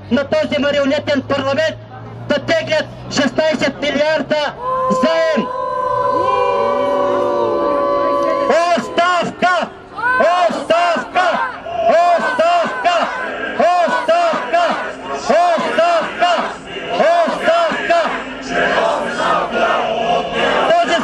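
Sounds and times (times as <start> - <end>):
man speaking into a microphone: 0.0 - 5.5
protesters shouting a slogan: 3.2 - 21.0.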